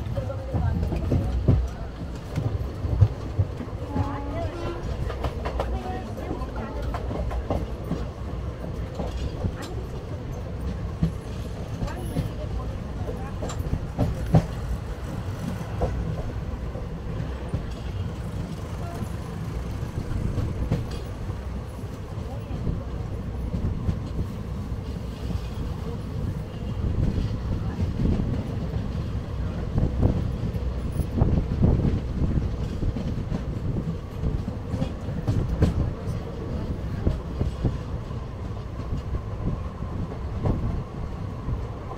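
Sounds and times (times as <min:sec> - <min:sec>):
train wheels rumbling on rail: 0:00.0 - 0:41.9
clatter from rail joints: 0:08.7 - 0:16.4, 0:17.2 - 0:21.4.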